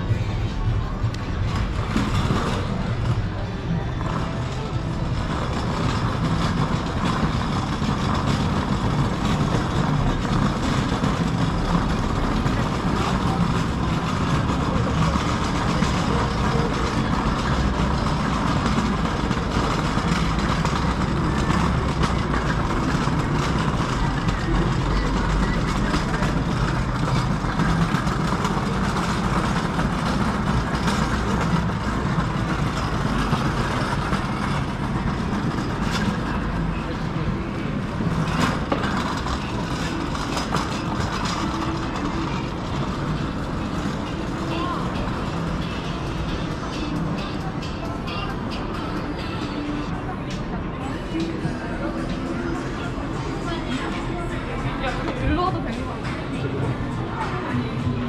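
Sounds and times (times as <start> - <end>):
faint music from shops: 0.0 - 58.0
low rumble of street noise: 0.0 - 58.0
scattered voices: 0.0 - 58.0.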